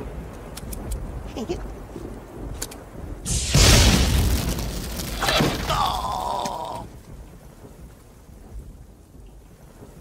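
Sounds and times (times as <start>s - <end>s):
faint rain hiss: 0.0s - 10.0s
thunder rumbling: 0.0s - 10.0s.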